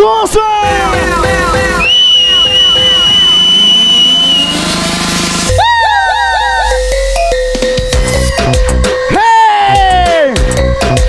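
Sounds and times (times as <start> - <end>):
rising synth sweep: 0.7 - 8.5.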